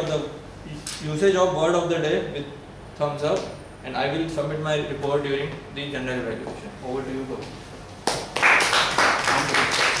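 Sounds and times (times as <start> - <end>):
group of people applauding: 8.0 - 10.0.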